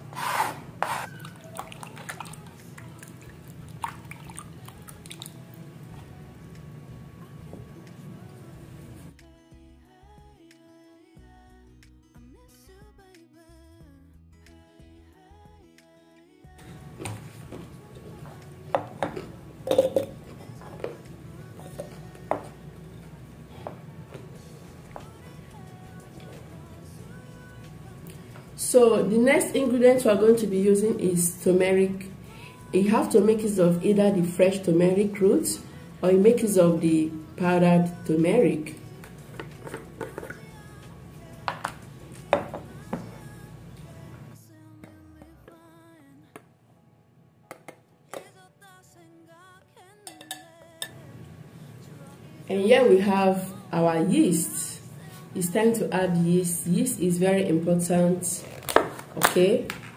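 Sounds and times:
background music: 0:00.0 - 0:59.9
jar cap clicks and knocks: 0:18.8 - 0:20.2.

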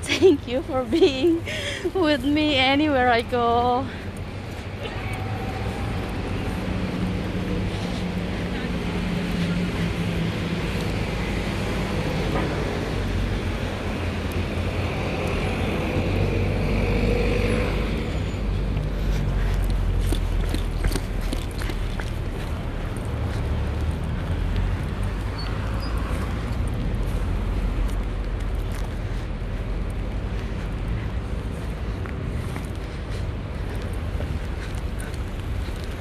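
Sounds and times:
cars idling and passing: 0:00.0 - 0:36.0.

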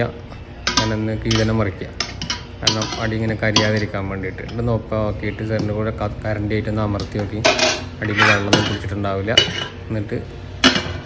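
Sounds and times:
metal spoon scraping metal pot: 0:07.4 - 0:09.8.

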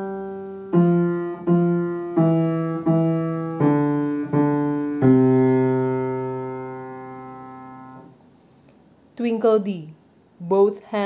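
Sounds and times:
piano note ringing: 0:00.0 - 0:08.2.

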